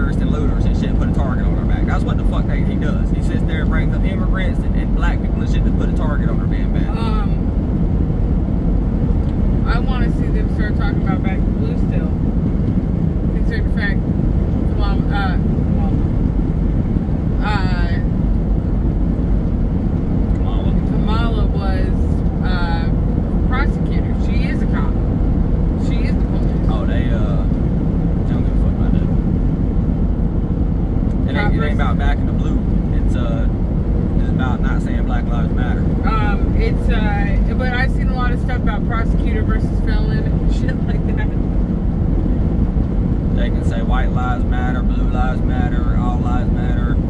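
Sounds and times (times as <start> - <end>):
person talking: 0.0 - 7.4, 20.4 - 22.9, 25.8 - 27.5, 31.2 - 33.5, 34.2 - 41.4
car road and engine noise: 0.0 - 47.0.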